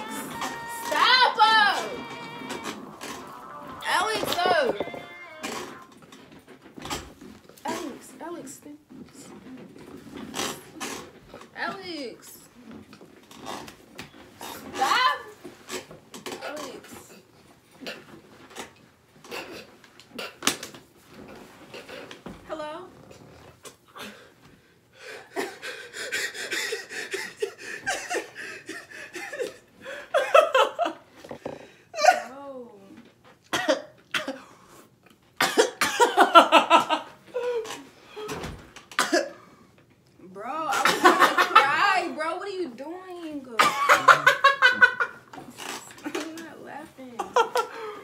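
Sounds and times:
woman's voice: 0.0s - 2.7s, 3.8s - 5.8s, 11.6s - 12.5s, 40.2s - 43.8s, 45.7s - 47.4s
woman's pitched cry: 0.0s - 5.9s
person coughing: 39.0s - 39.4s, 43.6s - 44.4s
person laughing rapidly: 43.6s - 45.2s.

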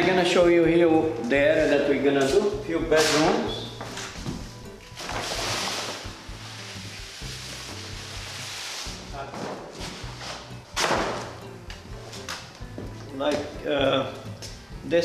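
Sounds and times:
background music with bass line: 0.0s - 15.0s
rustling noise: 1.6s - 11.4s.

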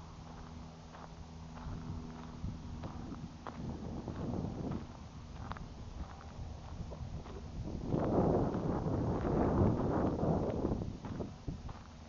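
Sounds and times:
footsteps crunching on gravel: 0.0s - 12.0s
wind gusting across microphone: 1.6s - 11.9s.

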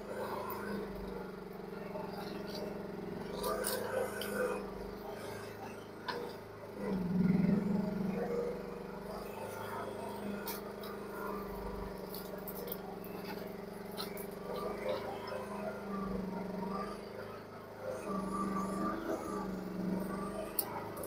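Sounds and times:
excavator engine running: 0.0s - 21.0s.

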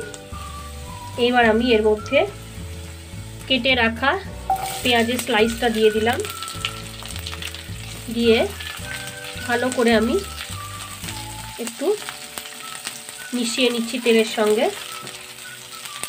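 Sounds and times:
onions sizzling in oil: 0.0s - 16.0s.

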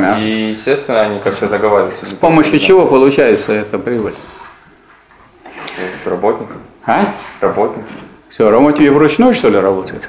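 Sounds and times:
man speaking: 0.0s - 4.4s, 5.6s - 10.0s.

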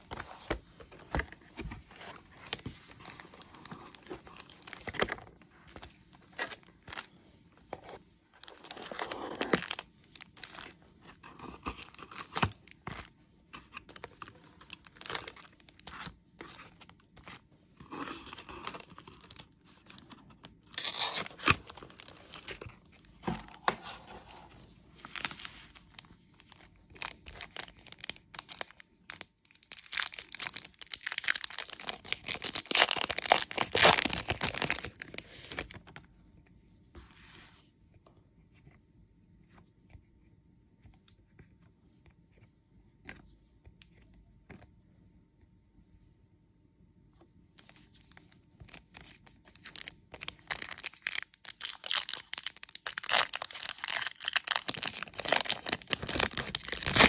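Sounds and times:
foil wrappers crinkling and tearing: 20.7s - 22.6s, 26.9s - 35.7s, 49.6s - 57.0s.

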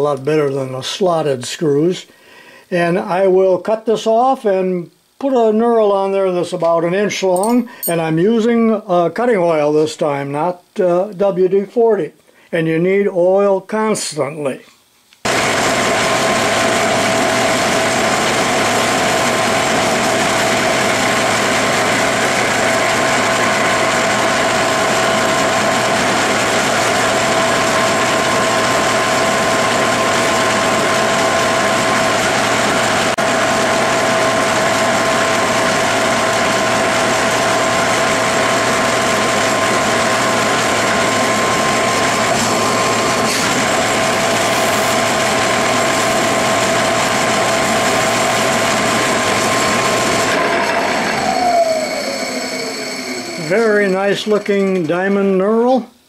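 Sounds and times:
metal lathe knurling steel rod: 15.3s - 55.2s.

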